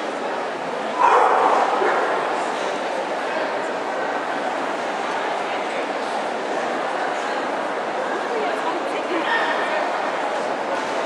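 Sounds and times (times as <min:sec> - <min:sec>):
crowd chatter: 0:00.0 - 0:11.0
dog barking: 0:01.0 - 0:02.1.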